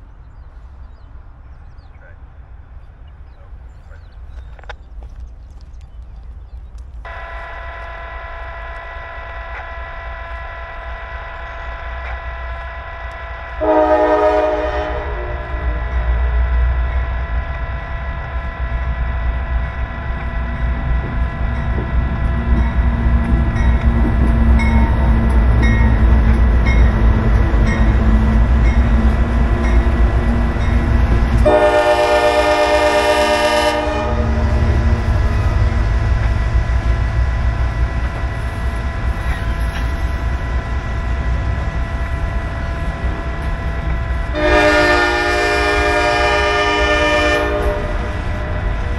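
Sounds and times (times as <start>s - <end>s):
diesel locomotive engine rumble: 0.0s - 48.9s
train rolling noise: 0.0s - 48.9s
train horn blasts: 7.0s - 36.4s, 44.3s - 48.6s.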